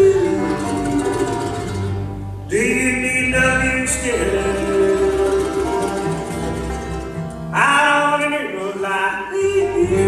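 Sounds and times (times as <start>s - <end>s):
acoustic guitar: 0.0s - 10.0s
banjo: 0.0s - 10.0s
upright bass: 0.0s - 10.0s.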